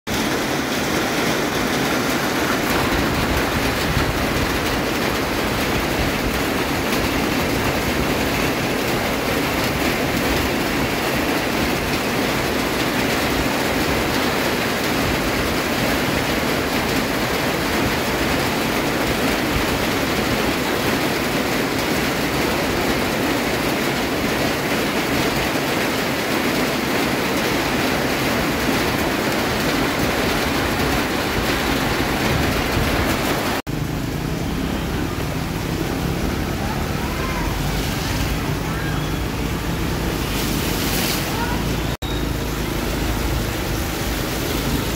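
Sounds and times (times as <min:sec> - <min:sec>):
heavy rain pouring: 0:00.1 - 0:44.9.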